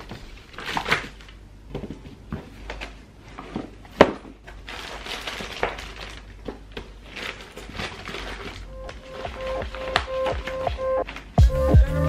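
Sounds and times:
papers and plastic folders rustling: 0.0s - 11.5s
background music with repeating melody: 8.7s - 12.0s.

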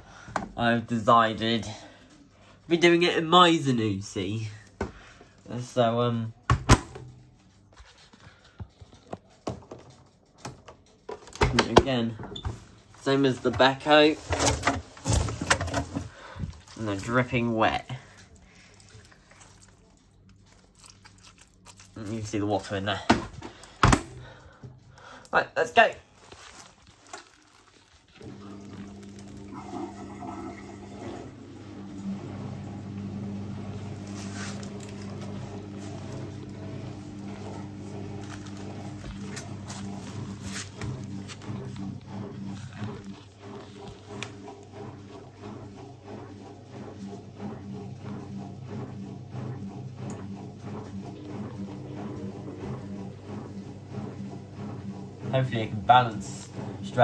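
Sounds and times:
washing machine hum: 0.0s - 57.0s
drum knocking and sloshing: 6.4s - 21.0s, 28.2s - 57.0s.

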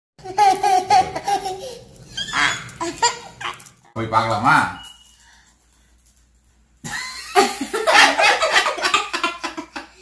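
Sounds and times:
boys laughing: 6.8s - 10.0s.

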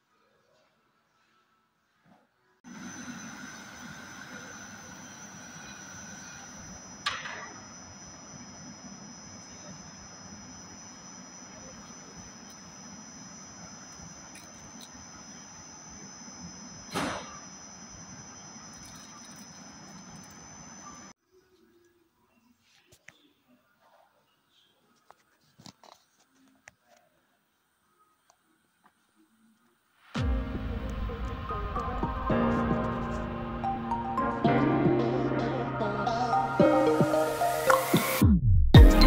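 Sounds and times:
machine with high whine: 2.7s - 21.2s, 30.0s - 39.0s.

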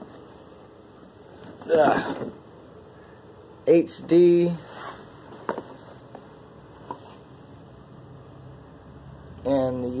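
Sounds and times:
faint clicks and taps handling boxes: 5.2s - 7.3s.

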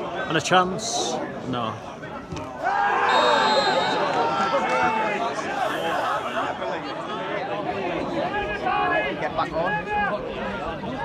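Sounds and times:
people talking and shouting: 0.0s - 11.0s.

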